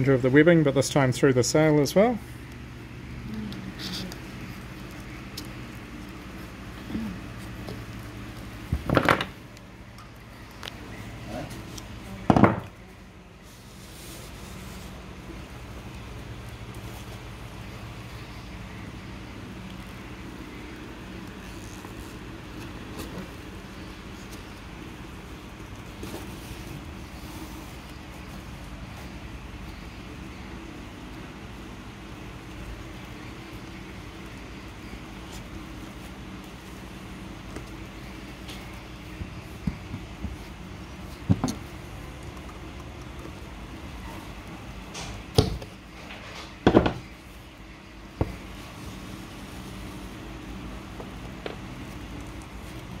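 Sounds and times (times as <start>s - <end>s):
low room hum: 0.0s - 53.0s.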